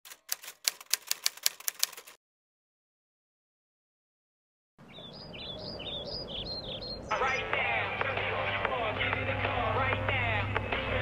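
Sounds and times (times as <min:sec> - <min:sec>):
typewriter keys clacking: 0:00.1 - 0:02.2.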